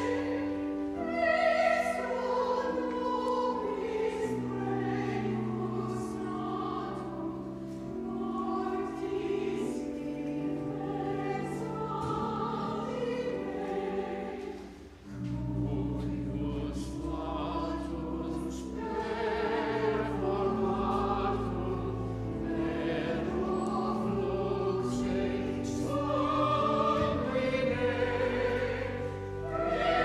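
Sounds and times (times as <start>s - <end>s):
church choir singing: 0.0s - 30.0s
organ accompaniment: 0.0s - 30.0s.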